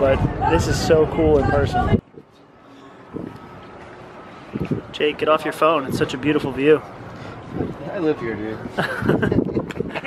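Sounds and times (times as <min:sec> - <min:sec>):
faint voices: 0:00.0 - 0:08.8.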